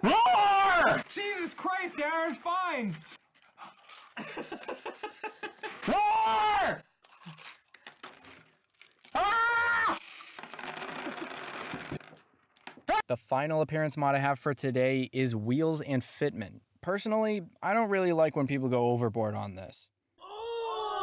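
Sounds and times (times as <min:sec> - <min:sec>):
candies rattling from glass jar: 0:01.0 - 0:04.4, 0:07.1 - 0:09.2, 0:09.9 - 0:12.2
men gasping and laughing: 0:03.4 - 0:08.0.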